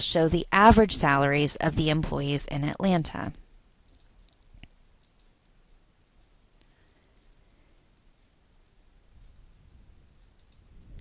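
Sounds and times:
keyboard typing: 3.8s - 4.4s, 5.0s - 5.4s, 6.6s - 8.8s
mouse clicking: 3.8s - 5.4s, 6.6s - 8.8s, 10.3s - 10.6s.

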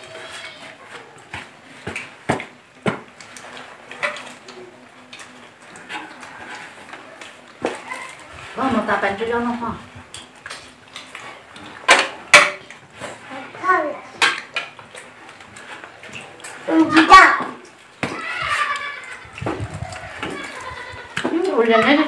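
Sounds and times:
child's voice: 13.3s - 14.2s, 16.7s - 17.6s.

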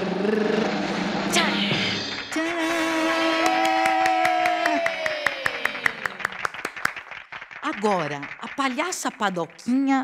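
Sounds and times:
held vocal cheer sliding down: 2.7s - 6.2s
person clapping fast: 3.3s - 9.6s.

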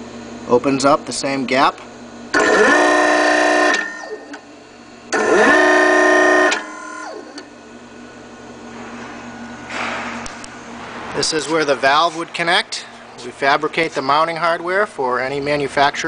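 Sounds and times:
motor and hydraulic pump whining: 0.0s - 16.0s.

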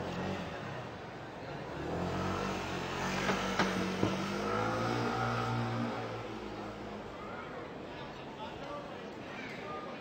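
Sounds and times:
vehicle engine running and revving: 1.6s - 6.7s.

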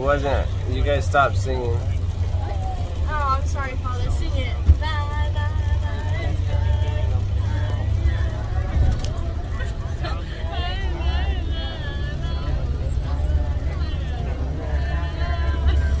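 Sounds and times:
bus engine and road noise: 0.0s - 16.0s
passengers talking: 0.0s - 16.0s.

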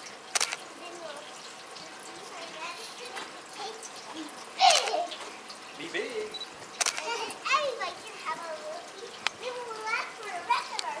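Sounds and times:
sharp click: 0.3s - 0.6s, 6.8s - 7.1s
children calling and chattering: 0.4s - 6.0s, 6.6s - 11.0s.

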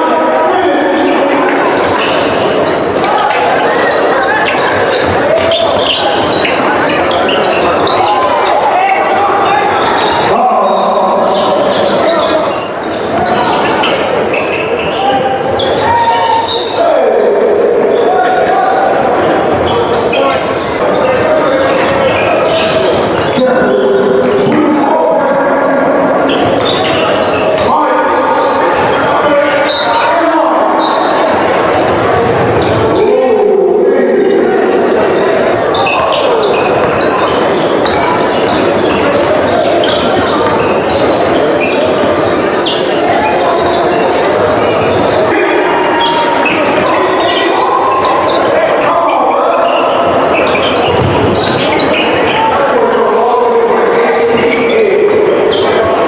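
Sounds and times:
voices of players and spectators: 0.0s - 56.0s.

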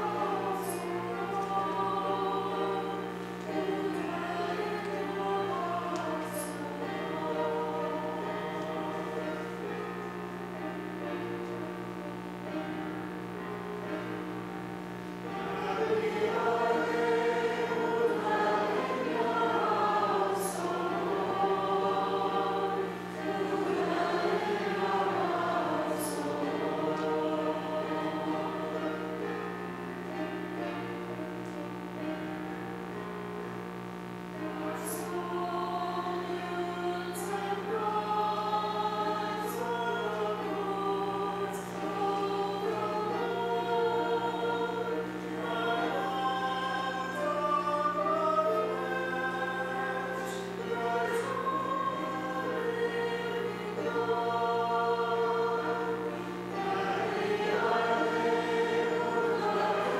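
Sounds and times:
choir singing: 0.0s - 33.1s, 34.2s - 59.9s.

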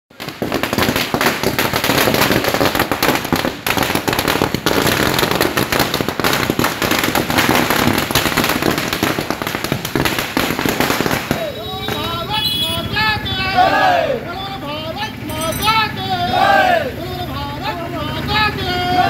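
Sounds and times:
firecrackers crackling: 0.1s - 13.3s.

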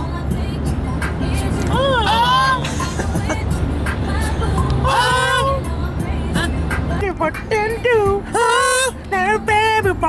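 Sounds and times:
car road and engine rumble: 0.0s - 10.0s
music: 0.0s - 10.0s.

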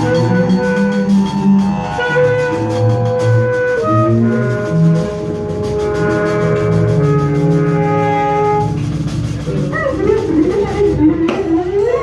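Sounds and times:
trumpet: 0.0s - 11.0s
bowed double bass: 0.0s - 12.0s
saxophone: 0.0s - 12.0s.

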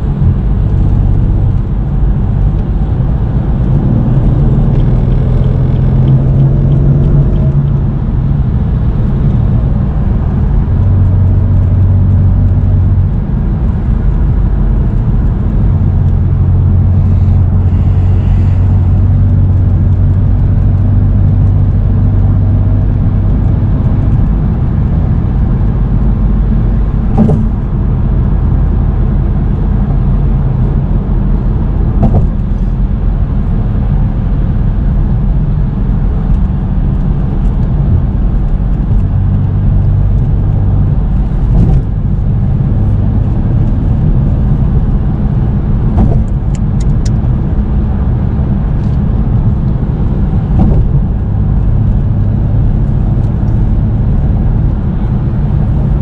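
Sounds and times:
car engine drone inside cabin: 0.0s - 56.0s
tyre and road noise: 0.0s - 56.0s.

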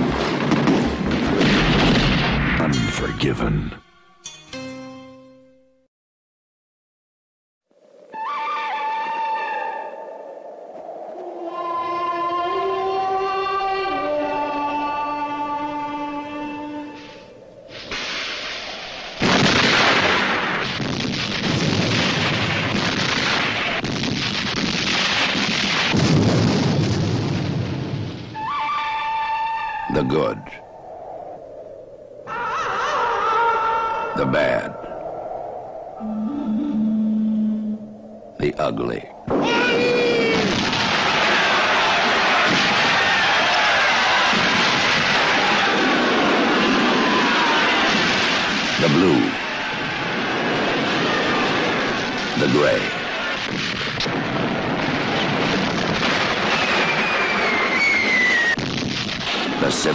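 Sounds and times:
cannon fire and explosions: 0.0s - 3.4s, 19.1s - 28.4s, 39.3s - 59.9s.

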